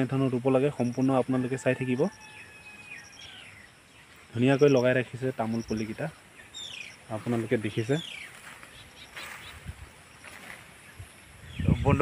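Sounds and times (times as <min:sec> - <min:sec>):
high repeated chirping: 0:02.2 - 0:12.0.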